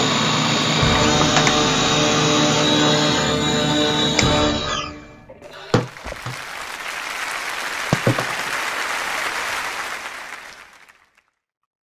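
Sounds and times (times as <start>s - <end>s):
sharp knocks: 0.8s - 6.4s, 7.9s - 8.5s
applause: 5.4s - 11.4s.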